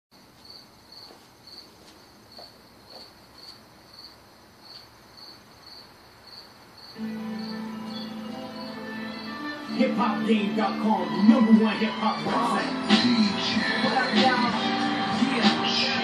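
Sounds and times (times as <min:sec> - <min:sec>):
cricket chirping: 0:00.2 - 0:09.8
music: 0:07.0 - 0:16.0.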